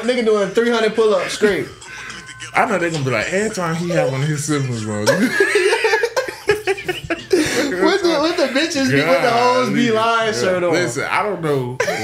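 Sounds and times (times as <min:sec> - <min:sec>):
men laughing: 0:01.0 - 0:09.7, 0:11.8 - 0:12.0.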